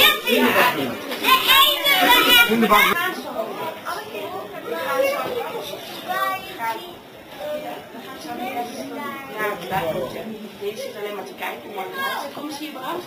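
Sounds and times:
young children chattering: 0.0 - 13.0.

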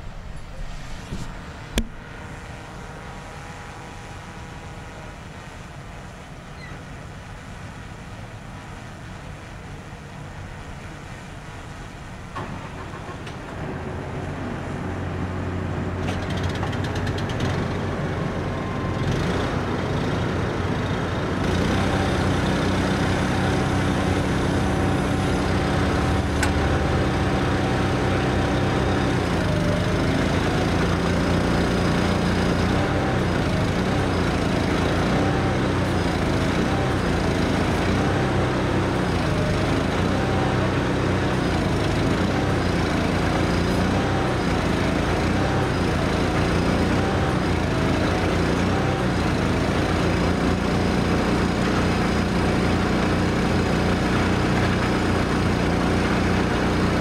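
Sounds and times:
heavy engines running: 0.0 - 57.0.

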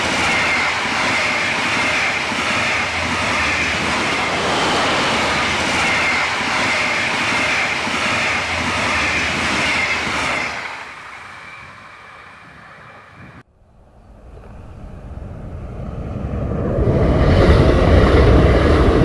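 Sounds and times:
train wheels rumbling on rails: 0.0 - 13.4.

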